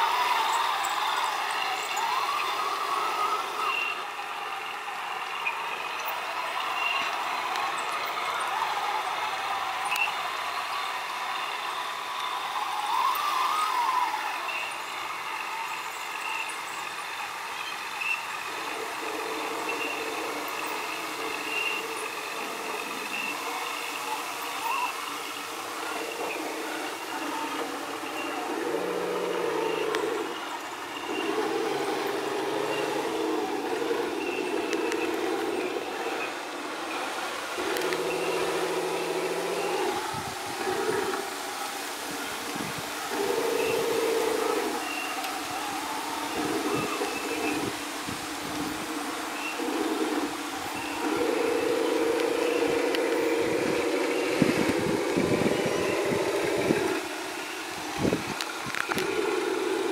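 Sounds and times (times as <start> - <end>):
model tank mechanical hum: 0.0 - 59.9.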